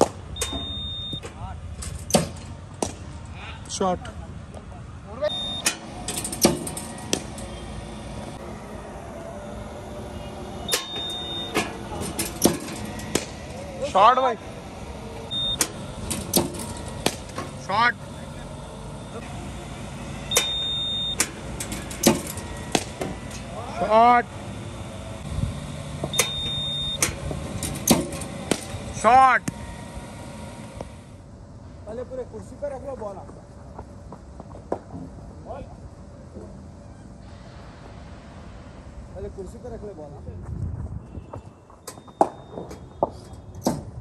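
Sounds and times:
ball fired with loud crack: 2.2 - 3.1, 12.4 - 13.4, 16.4 - 17.4, 22.0 - 23.4
high steady tone: 5.2 - 27.3
bowling machine humming: 5.2 - 31.4.

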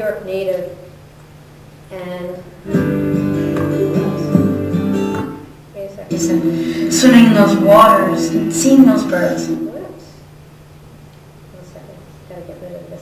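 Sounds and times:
acoustic guitar chords: 2.6 - 10.0.

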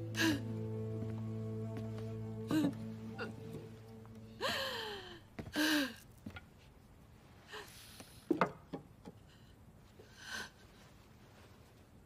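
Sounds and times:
woman crying: 2.4 - 3.5, 4.2 - 5.9.

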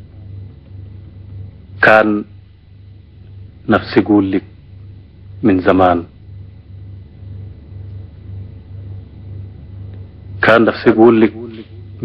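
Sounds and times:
low pulsing hum: 0.0 - 12.0.

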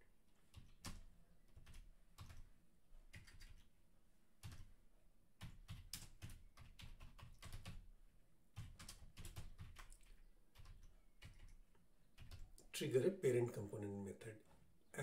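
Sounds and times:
typing on computer keyboard: 0.4 - 2.5, 3.1 - 3.7, 4.4 - 4.7, 5.4 - 7.9, 8.5 - 12.7.

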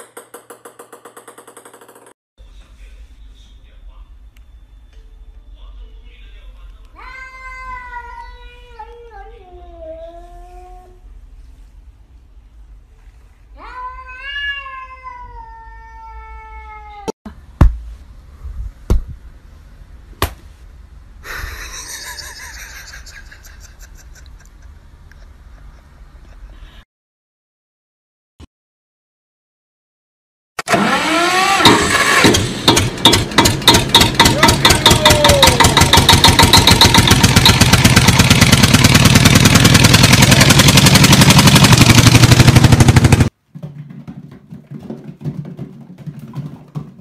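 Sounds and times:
cat meowing: 7.0 - 10.9, 13.6 - 17.1
sharp knocks: 31.7 - 38.0.

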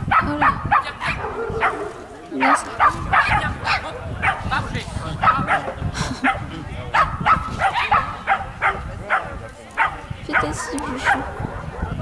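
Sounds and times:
small dog barking rapidly: 0.0 - 4.6, 5.2 - 12.0.

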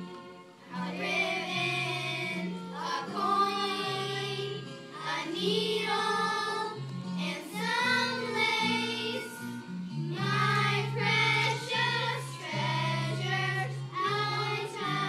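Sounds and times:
girls singing in chorus: 0.7 - 9.6, 10.2 - 15.0.

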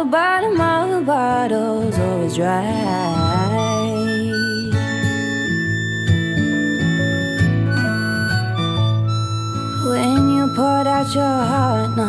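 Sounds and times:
person singing: 0.0 - 5.2, 7.7 - 8.3, 9.8 - 12.0
acoustic guitar: 0.0 - 12.0
harmonica playing high notes: 2.6 - 12.0.

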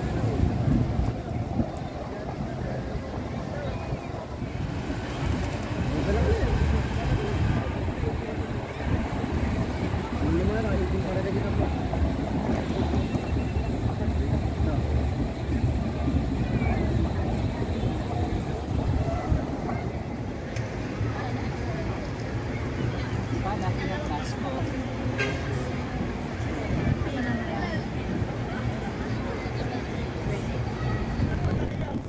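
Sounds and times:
wind rumbling on microphone: 0.0 - 23.6, 25.9 - 32.0.

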